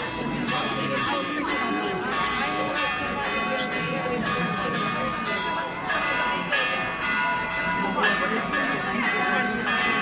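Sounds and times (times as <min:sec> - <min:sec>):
bells ringing: 0:00.0 - 0:10.0
crowd chatter: 0:00.0 - 0:10.0.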